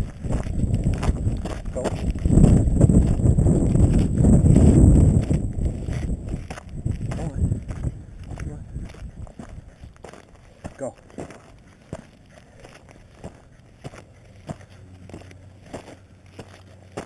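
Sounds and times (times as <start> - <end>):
footsteps crunching on gravel: 0.0 - 17.0.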